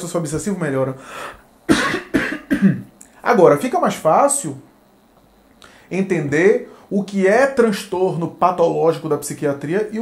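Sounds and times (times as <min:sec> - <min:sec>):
man coughing: 0:01.7 - 0:02.9.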